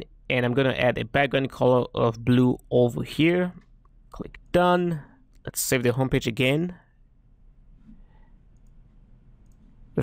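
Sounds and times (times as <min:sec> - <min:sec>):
computer mouse click: 0:08.5 - 0:08.8, 0:09.4 - 0:09.8.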